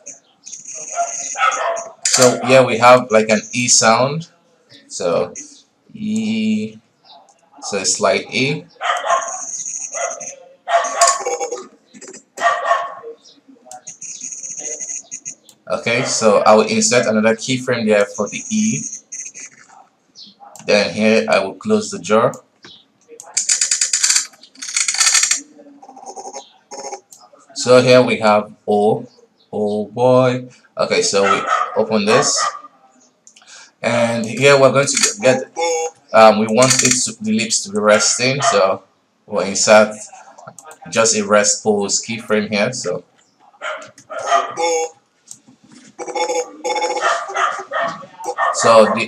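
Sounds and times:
stuttering voice clicking fragments: 2.0s - 2.4s, 13.7s - 15.6s, 18.3s - 19.8s, 23.2s - 27.3s, 34.2s - 37.1s
choppy stuttering vocal fragments: 9.3s - 12.4s, 13.7s - 15.4s, 44.3s - 45.0s, 45.9s - 49.0s.

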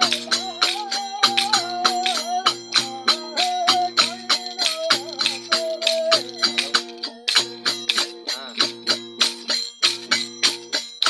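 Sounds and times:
rapid jingling percussion: 0.0s - 11.0s.

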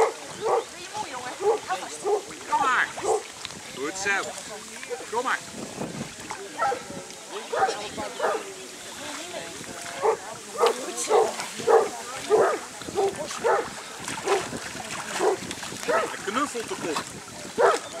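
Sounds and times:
dog barking: 0.0s - 0.7s, 1.4s - 2.2s, 3.0s - 3.2s, 6.6s - 6.9s, 7.5s - 8.5s, 10.0s - 14.4s, 15.2s - 16.1s, 17.6s - 17.9s.

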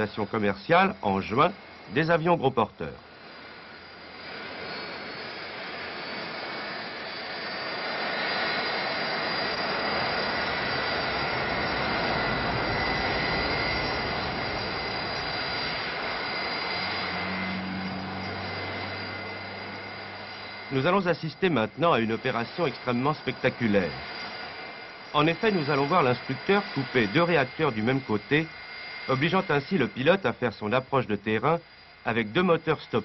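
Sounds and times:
jet engines in flight: 0.0s - 33.0s
low hum: 0.0s - 33.0s.

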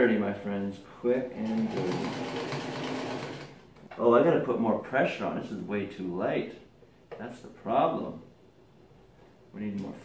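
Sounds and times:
sewing machine running: 1.4s - 3.6s.

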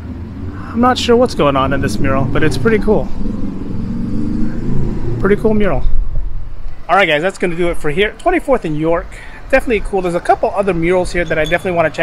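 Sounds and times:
vehicle engine running: 0.0s - 6.6s.

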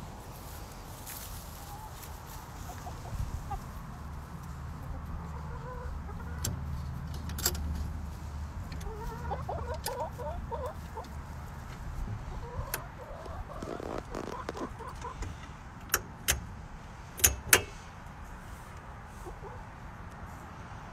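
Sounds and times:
hens clucking: 0.6s - 7.0s, 8.1s - 15.7s, 18.4s - 20.9s.

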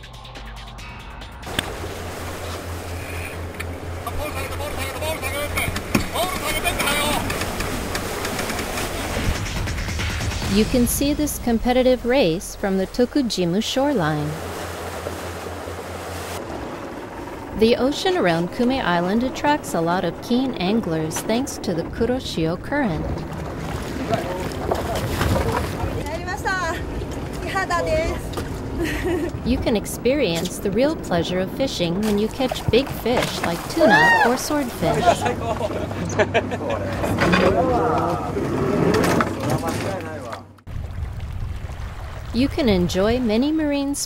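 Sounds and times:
boat engine rumble: 0.0s - 44.0s
wind and water rushing: 1.5s - 31.5s, 40.7s - 43.9s.

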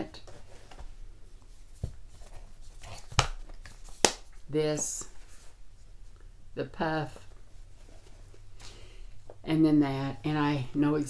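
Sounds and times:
soft rustling: 0.2s - 6.4s, 7.0s - 11.0s.

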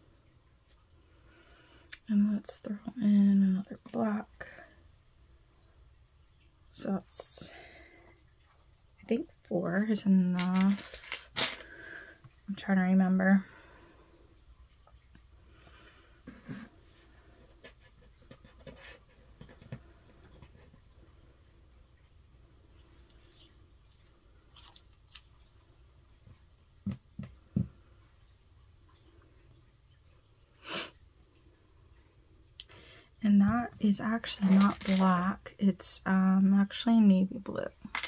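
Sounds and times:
rustling: 10.4s - 11.8s, 34.2s - 35.2s.

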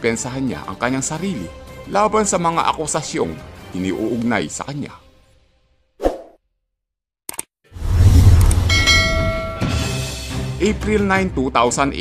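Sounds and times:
deep rumbling whoosh: 7.8s - 9.8s
bright bell ding: 8.7s - 10.3s.

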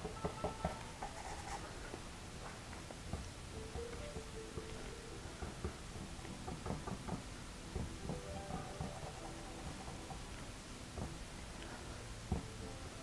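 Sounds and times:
brush dabbing on canvas: 1.0s - 2.6s.

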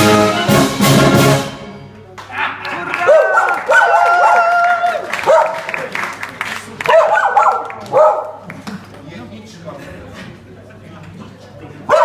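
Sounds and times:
murmur of voices: 1.8s - 12.0s
dog barking: 3.1s - 4.4s, 5.2s - 5.7s, 6.9s - 8.4s.

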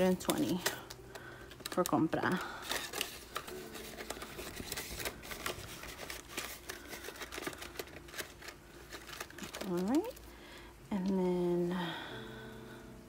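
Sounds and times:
paper banknotes rustling: 0.0s - 10.2s.

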